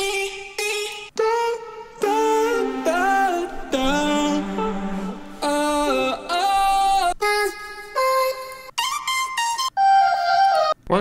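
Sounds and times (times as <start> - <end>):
chopped sung vocal loop: 0.0 - 10.3.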